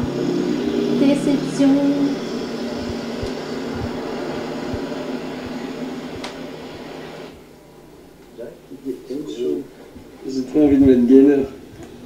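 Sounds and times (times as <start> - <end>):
film soundtrack over loudspeakers: 0.0 - 7.3
soft low thumps: 1.1 - 6.8.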